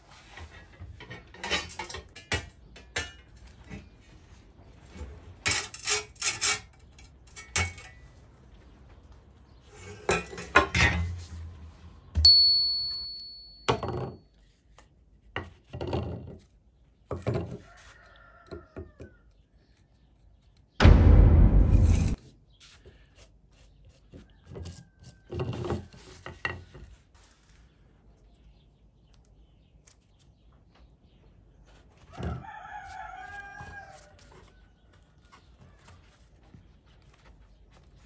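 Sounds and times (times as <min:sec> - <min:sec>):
discs scraping on wood: 0:04.8 - 0:08.1.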